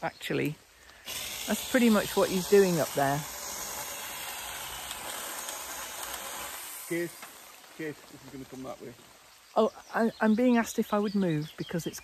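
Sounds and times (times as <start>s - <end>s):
rain falling on leaves: 0.0s - 12.0s.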